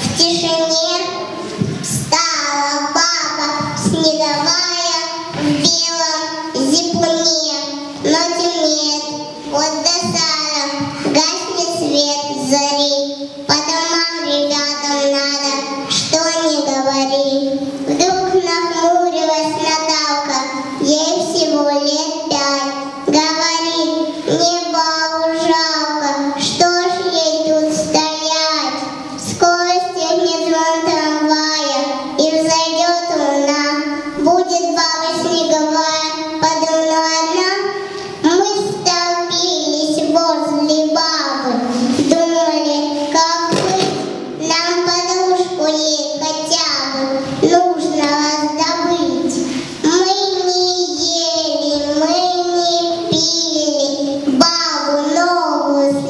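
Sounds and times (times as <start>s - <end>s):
girl singing into microphone: 30.5s - 45.7s.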